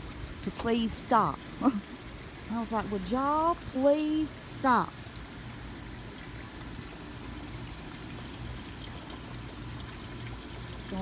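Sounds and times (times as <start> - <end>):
water pouring into stone basin: 5.1 - 11.0.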